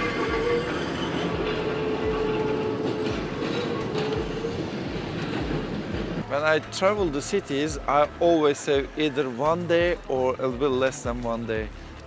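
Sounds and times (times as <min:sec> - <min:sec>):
steady tram whine: 0:00.0 - 0:10.6
tram rolling on rails: 0:00.0 - 0:11.1.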